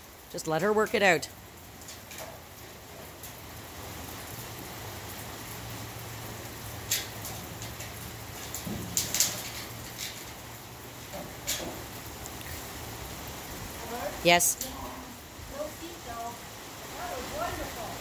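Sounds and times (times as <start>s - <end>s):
light rain hiss: 0.0s - 18.0s.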